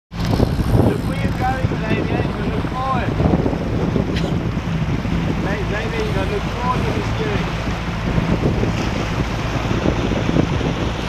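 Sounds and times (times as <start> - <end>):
outboard motor running: 0.1 - 11.0
wind buffeting microphone: 0.1 - 11.0.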